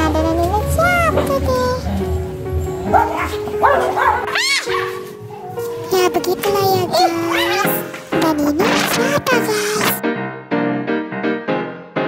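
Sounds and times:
dog barking and yelping: 2.9 - 5.6.

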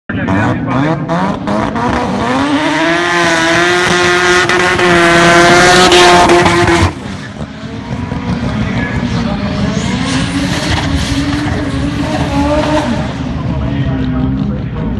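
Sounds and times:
car engine revving: 0.1 - 14.9.

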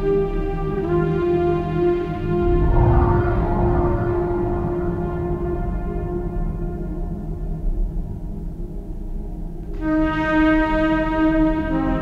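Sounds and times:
trumpet long note: 2.0 - 7.4
low bass drone: 2.2 - 9.4.

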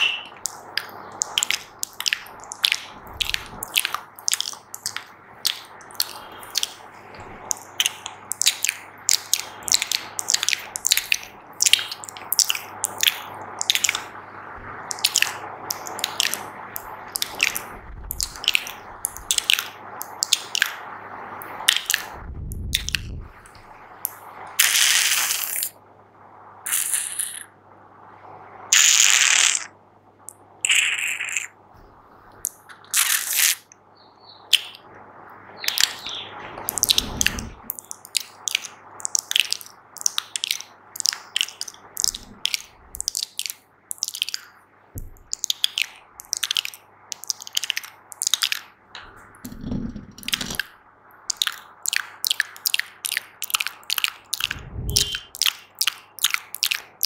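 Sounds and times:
wet mouth clicks and pops: 0.0 - 6.8, 7.5 - 14.1, 14.9 - 20.8, 21.4 - 25.8, 30.3 - 31.5, 32.4 - 33.6, 34.5 - 34.8, 36.7 - 48.7, 49.5 - 57.0.

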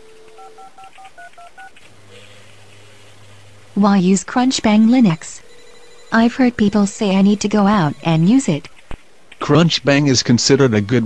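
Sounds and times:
touch-tone keypad beeps: 0.0 - 1.7, 5.5 - 8.7
telephone dial tone: 0.0 - 2.6.

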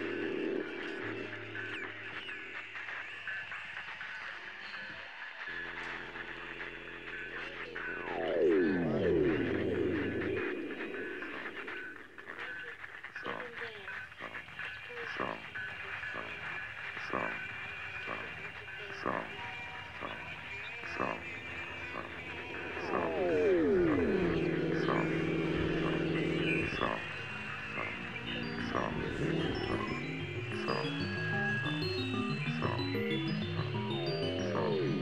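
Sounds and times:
faint steady high tones: 4.9 - 12.7, 13.3 - 35.0
low hum: 7.6 - 12.1, 20.9 - 35.0
falling pitch glide: 8.0 - 12.0, 21.7 - 35.0.

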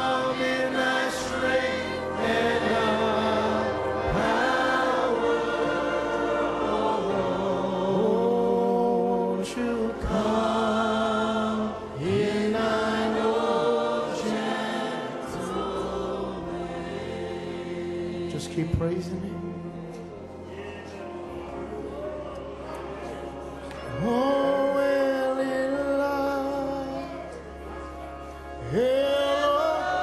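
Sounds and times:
congregation singing: 0.0 - 30.0.

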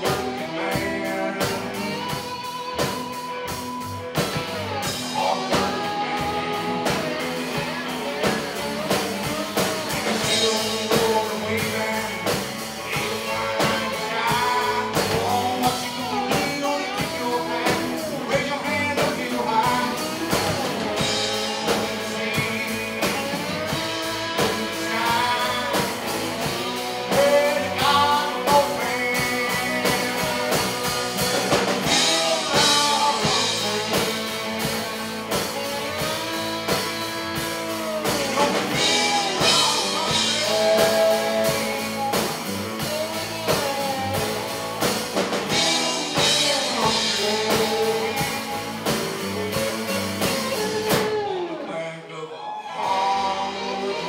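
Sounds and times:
drum kit beat: 0.0 - 51.6, 52.8 - 54.0
electric guitar: 0.0 - 54.0
man singing lead: 0.0 - 54.0.

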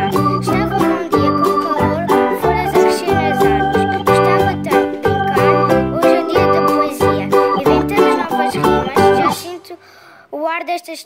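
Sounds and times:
acoustic guitar strumming: 0.0 - 9.6.

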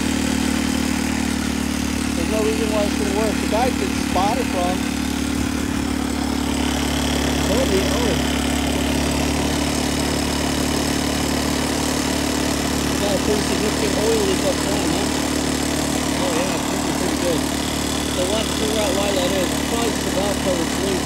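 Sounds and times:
buggy engine idling: 0.0 - 21.0.

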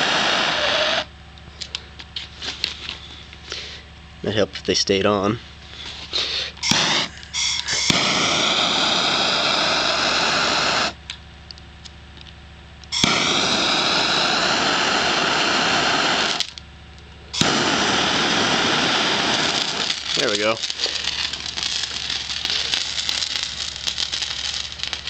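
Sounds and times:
gas torch flame hissing: 0.0 - 3.8, 5.7 - 11.1, 12.9 - 16.6, 17.3 - 25.0.

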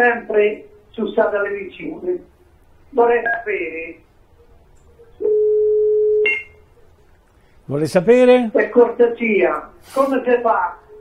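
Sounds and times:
phone line click: 5.2 - 6.6
telephone beep: 5.2 - 6.6.

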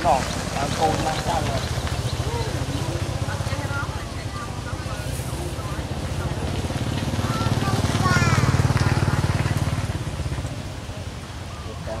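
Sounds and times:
small engine puttering: 0.0 - 11.0.

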